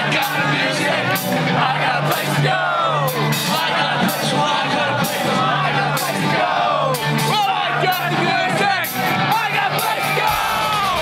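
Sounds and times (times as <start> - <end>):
distorted electric guitars: 0.0 - 11.0
drums: 0.0 - 11.0
shouted lead vocal: 0.0 - 11.0.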